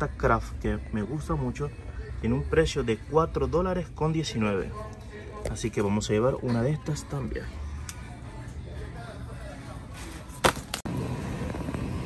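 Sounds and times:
supermarket background noise: 0.0s - 12.0s.

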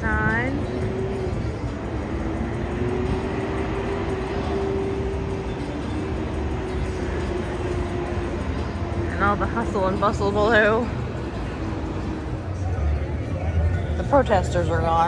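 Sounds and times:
city traffic rumble: 0.0s - 15.0s
steady hum-like tone: 0.0s - 15.0s.

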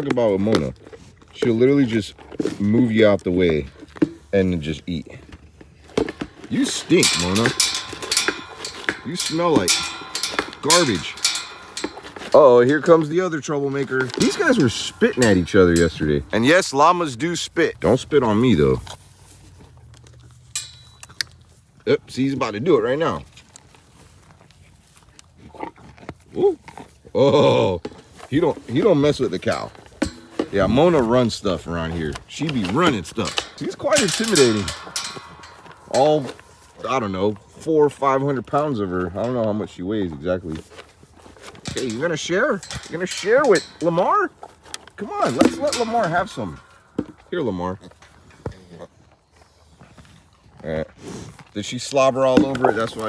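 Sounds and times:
rustling: 0.0s - 21.8s.

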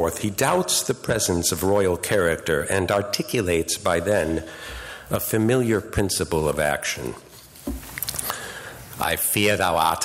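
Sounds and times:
low room noise: 0.0s - 10.0s.

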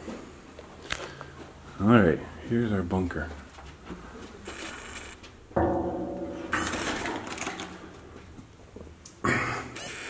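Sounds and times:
door creaking on hinges: 4.4s - 5.2s, 9.7s - 10.0s.

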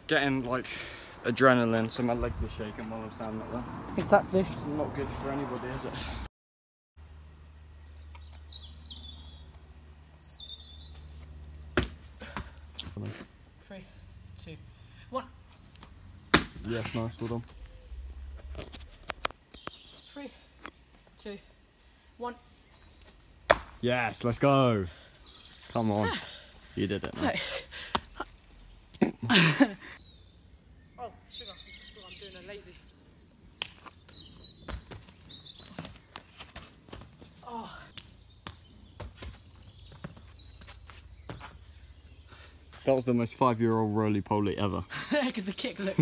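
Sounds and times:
faint outdoor background: 0.0s - 6.3s, 7.0s - 46.0s
footsteps on tarmac: 38.0s - 42.9s.

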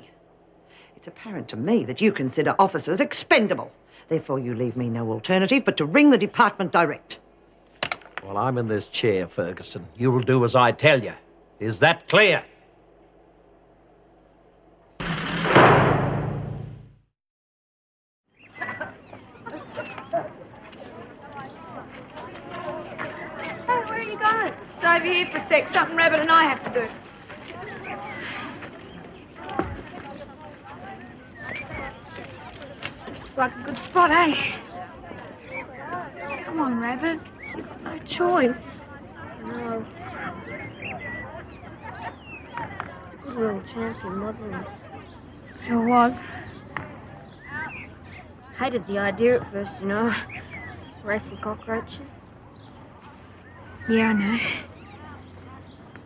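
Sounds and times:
birds chirping: 18.3s - 56.0s
woman speaking: 23.7s - 27.0s, 33.1s - 34.6s, 51.0s - 52.2s, 53.8s - 54.7s.

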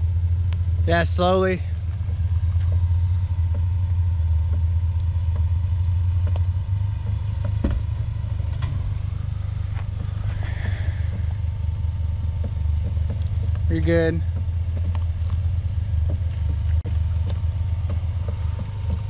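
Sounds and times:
truck engine running at low revs: 0.0s - 19.0s
tyres rolling over rocks: 5.3s - 19.0s.

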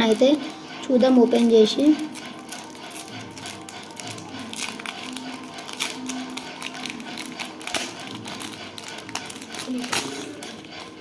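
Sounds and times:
foil wrapper tearing and crinkling: 2.1s - 10.7s.

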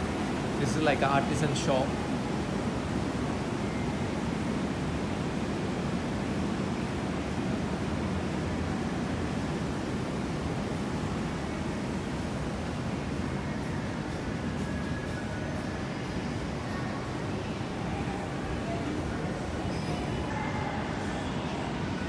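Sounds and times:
indoor mall air handling rush: 0.0s - 22.0s.

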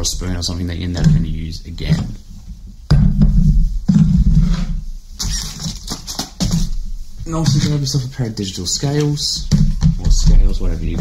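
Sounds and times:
rustling: 0.0s - 11.0s
saucepan scraping on wooden table: 3.9s - 6.6s.

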